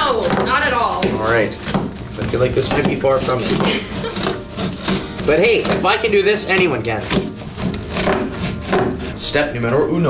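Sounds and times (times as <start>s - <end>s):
cardboard being cut and torn: 0.0s - 9.2s.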